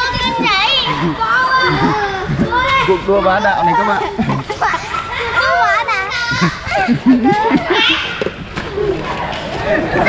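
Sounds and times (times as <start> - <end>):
children calling out excitedly: 0.0 - 10.0.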